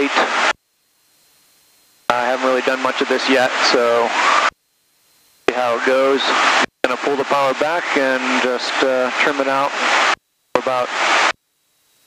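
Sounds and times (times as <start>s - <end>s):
faint hiss: 0.0s - 12.0s
man speaking over intercom: 10.6s - 10.9s.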